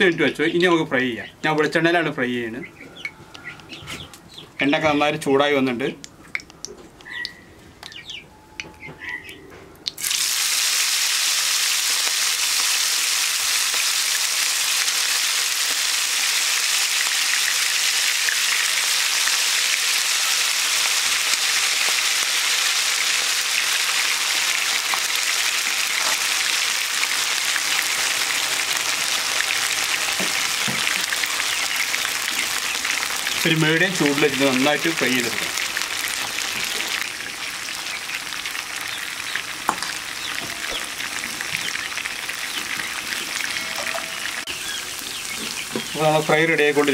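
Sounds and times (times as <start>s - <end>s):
deep-frying sizzle: 8.8s - 46.9s.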